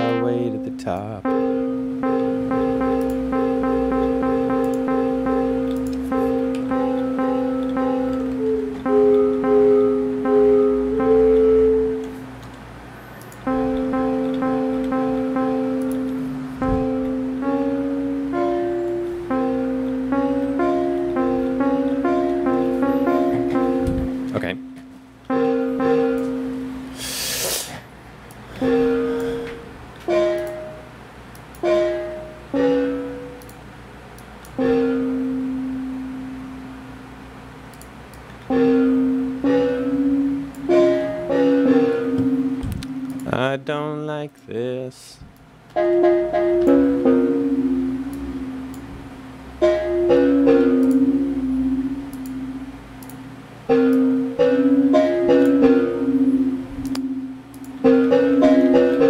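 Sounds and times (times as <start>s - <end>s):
synthesizer notes: 0.0s - 27.2s, 28.5s - 37.7s, 38.5s - 43.7s, 45.7s - 59.0s.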